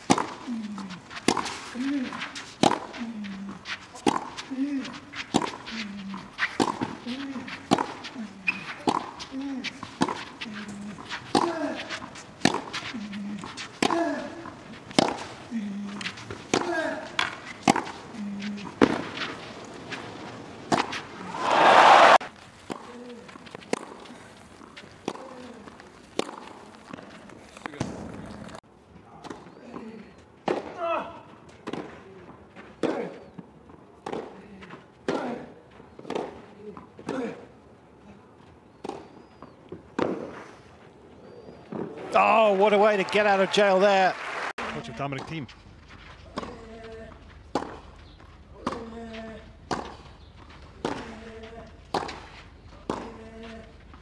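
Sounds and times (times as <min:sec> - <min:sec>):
racket striking tennis ball: 0:00.0 - 0:26.7, 0:36.0 - 0:36.4, 0:40.0 - 0:40.5, 0:47.5 - 0:47.8, 0:49.7 - 0:51.2, 0:51.9 - 0:53.2
crowd noise: 0:08.0 - 0:22.3, 0:41.3 - 0:45.4.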